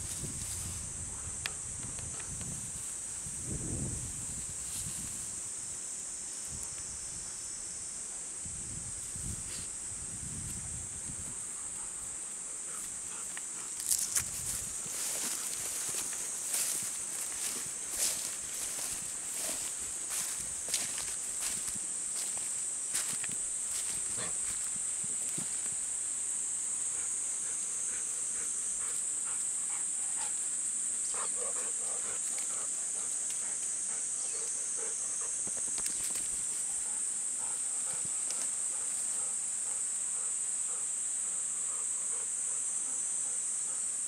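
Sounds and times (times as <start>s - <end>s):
cicadas droning: 0.0s - 44.0s.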